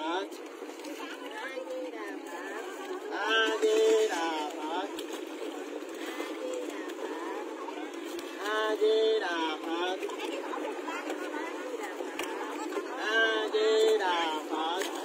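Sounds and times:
background chatter: 0:00.0 - 0:15.0.

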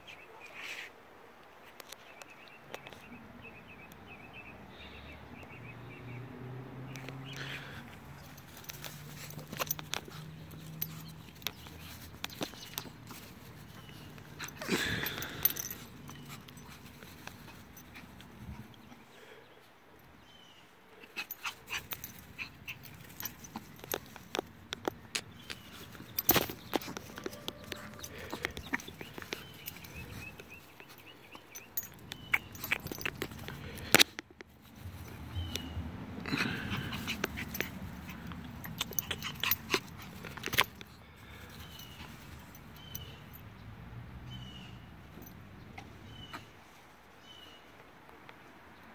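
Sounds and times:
dog sniffing: 0:21.0 - 0:33.9, 0:36.3 - 0:43.0.

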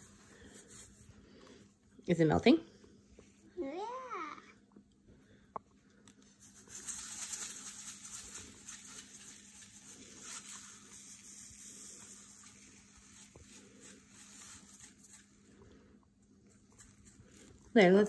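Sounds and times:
salt grains pattering on ice: 0:06.4 - 0:15.4.

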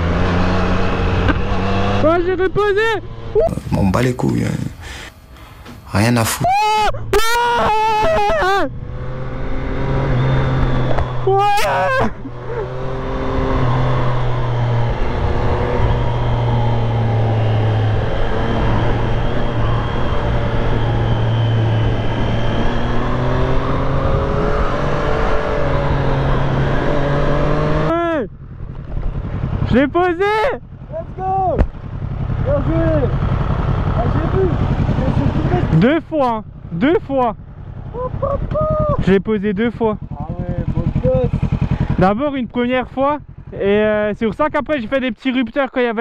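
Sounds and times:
motorcycle engine running: 0:07.7 - 0:46.0.

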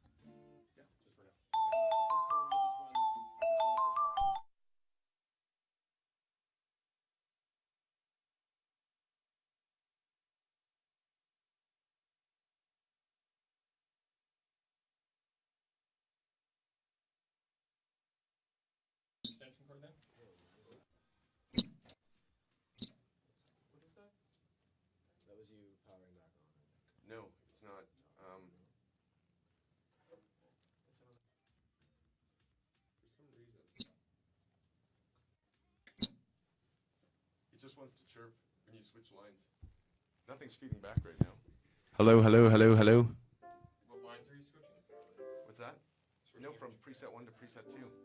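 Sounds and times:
keyboard playing bell-like notes: 0:01.6 - 0:04.5.

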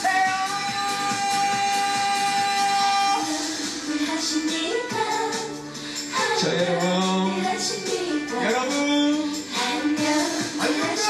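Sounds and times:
pop band accompaniment: 0:00.0 - 0:11.0.

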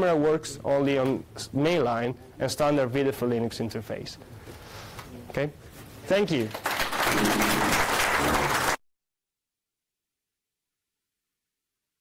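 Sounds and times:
audience applause: 0:06.5 - 0:08.8.

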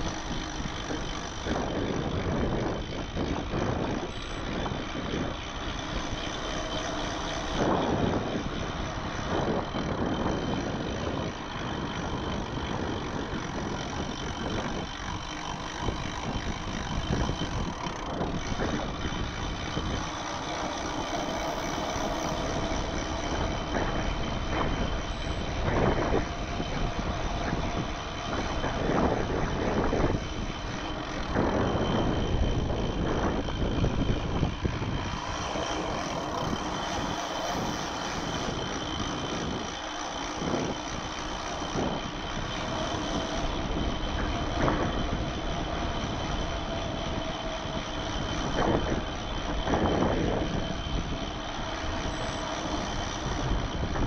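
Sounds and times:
bike tyres rolling on asphalt: 0:00.0 - 0:54.0
wind rushing over microphone: 0:00.0 - 0:54.0.

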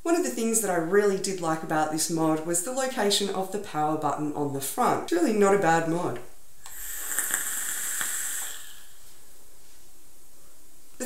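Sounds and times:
vape coil hissing and sizzling: 0:06.6 - 0:09.2.

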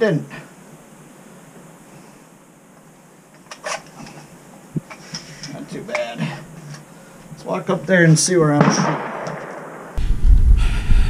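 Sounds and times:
rifle handling clatter: 0:03.3 - 0:04.3, 0:08.6 - 0:09.7
rifle knocking on rest: 0:08.9 - 0:09.7.

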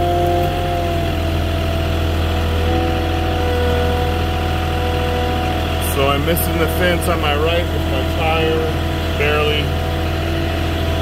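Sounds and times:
forklift engine hum with whine: 0:00.0 - 0:11.0.

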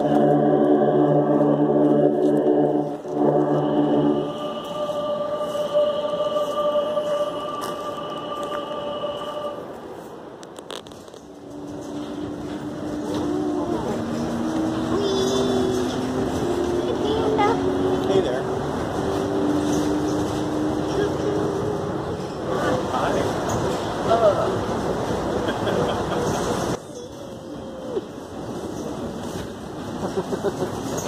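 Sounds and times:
monorail electric motor whine: 0:00.0 - 0:09.7, 0:11.2 - 0:23.4
long held musical tones: 0:00.0 - 0:10.5, 0:11.2 - 0:23.2.

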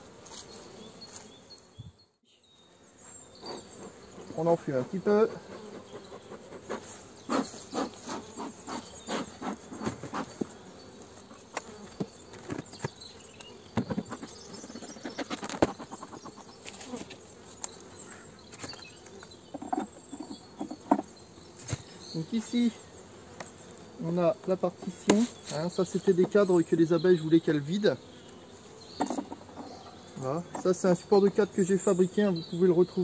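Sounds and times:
honeybees buzzing: 0:00.0 - 0:33.0
knocks and clicks of hive frames: 0:11.4 - 0:17.8, 0:18.5 - 0:22.0, 0:24.4 - 0:26.4, 0:29.0 - 0:29.7.

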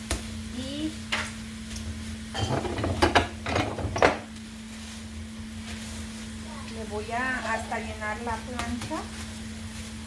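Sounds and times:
plastic sheet rustling: 0:04.5 - 0:10.0.

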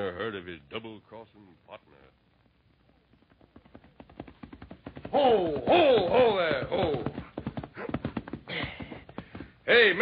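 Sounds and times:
horse hoofbeats clip-clopping: 0:02.9 - 0:10.0.

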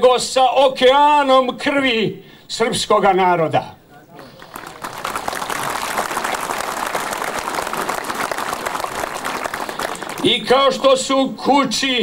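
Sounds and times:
crowd applauding: 0:04.2 - 0:10.8.

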